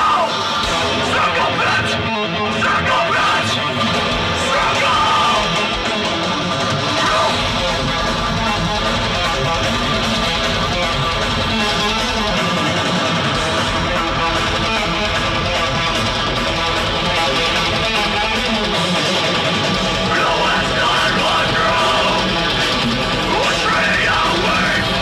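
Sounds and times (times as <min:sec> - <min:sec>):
bass guitar: 0:00.0 - 0:25.0
distorted electric guitars: 0:00.0 - 0:25.0
drums: 0:00.0 - 0:25.0.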